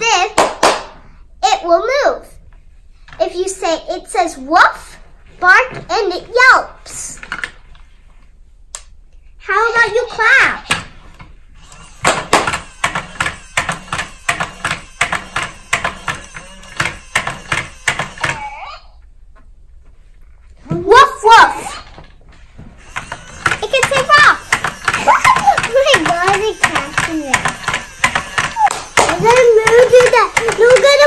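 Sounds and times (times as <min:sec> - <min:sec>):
rapid hand clapping: 0:00.3 - 0:01.0, 0:28.0 - 0:29.4
children's excited voices: 0:20.8 - 0:21.9, 0:23.6 - 0:24.4, 0:25.0 - 0:27.4.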